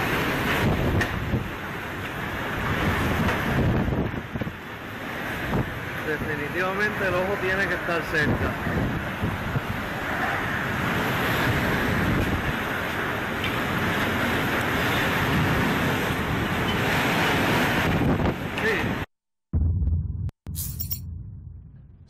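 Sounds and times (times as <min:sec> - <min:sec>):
wind buffeting microphone: 0:00.0 - 0:06.3, 0:08.1 - 0:19.0
heavy rain: 0:00.0 - 0:19.1
strong wind: 0:00.0 - 0:19.1.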